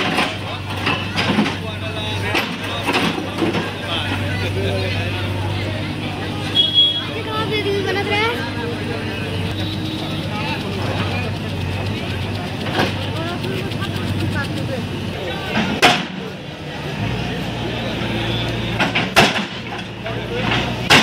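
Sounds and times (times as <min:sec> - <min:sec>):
crowd talking: 0:00.0 - 0:21.0
diesel engine running: 0:00.0 - 0:21.0.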